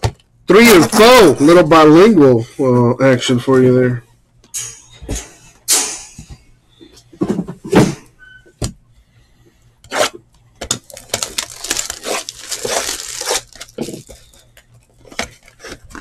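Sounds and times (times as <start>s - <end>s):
plastic shrink-wrap tearing and crinkling: 10.7s - 14.5s.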